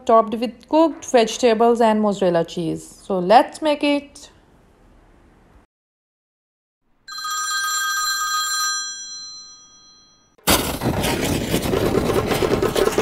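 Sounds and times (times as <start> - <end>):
bell-like chime: 7.1 - 10.4.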